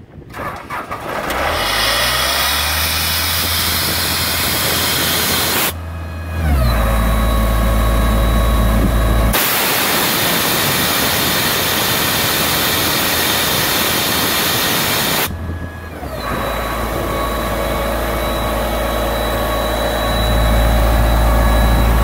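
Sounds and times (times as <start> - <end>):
diesel engine starting and running: 0.0 - 22.0
high whine: 2.1 - 22.0
loud steady hiss: 9.4 - 15.3.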